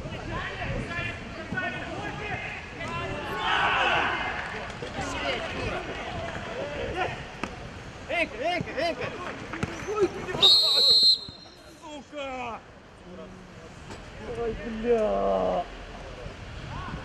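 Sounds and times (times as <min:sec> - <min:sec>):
players shouting: 0:01.4 - 0:07.4
referee's whistle: 0:10.4 - 0:11.7.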